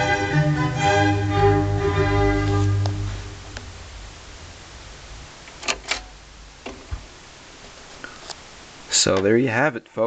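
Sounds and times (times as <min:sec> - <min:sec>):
low hum: 0:00.0 - 0:07.9
faint hiss: 0:00.0 - 0:10.0.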